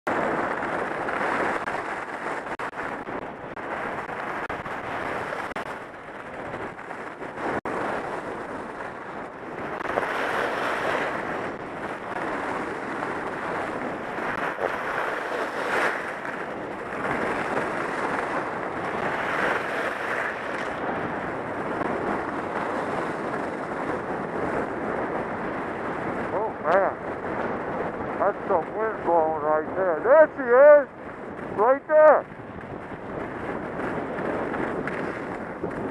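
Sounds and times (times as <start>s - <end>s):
skis scraping over snow: 0.1s - 26.4s, 27.2s - 35.9s
wind rushing over microphone: 0.1s - 35.9s.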